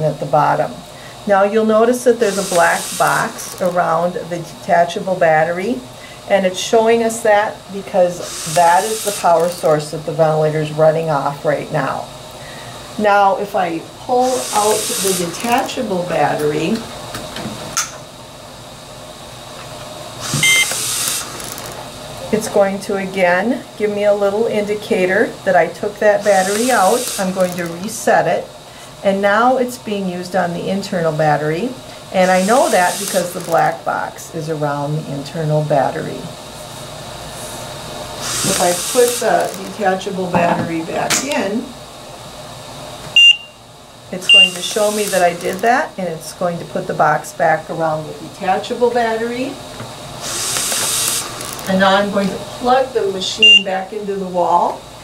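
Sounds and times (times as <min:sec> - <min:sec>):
hissing air: 0:02.2 - 0:03.8, 0:08.1 - 0:09.6, 0:14.1 - 0:15.7, 0:20.2 - 0:21.7, 0:26.1 - 0:27.8, 0:32.0 - 0:33.6, 0:37.2 - 0:39.7, 0:44.2 - 0:45.6, 0:50.2 - 0:51.7
ventilator short beep: 0:20.4 - 0:20.8, 0:43.1 - 0:43.6, 0:44.3 - 0:44.7, 0:53.4 - 0:53.7
short high electronic beep: 0:43.2 - 0:43.6.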